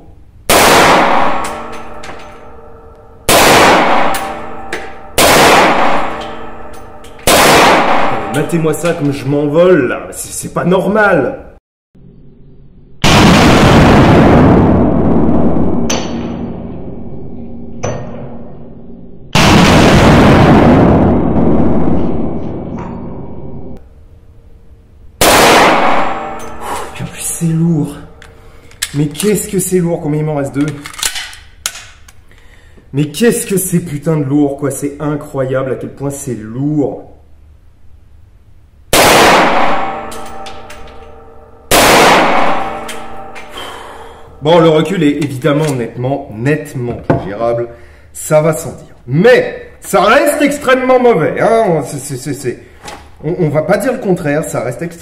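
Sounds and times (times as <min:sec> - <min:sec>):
pistol shots reverberating: 0:00.5 - 0:09.0, 0:25.2 - 0:27.0, 0:39.0 - 0:43.4.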